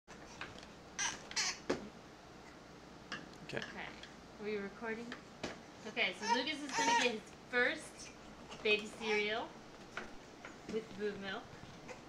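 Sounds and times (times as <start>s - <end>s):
infant squeaking and squealing: 6.2s - 7.2s, 9.0s - 9.4s.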